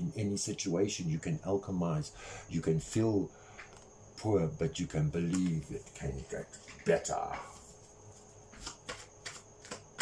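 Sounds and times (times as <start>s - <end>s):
cards clicking while shuffled: 5.2s - 5.6s, 8.5s - 10.0s.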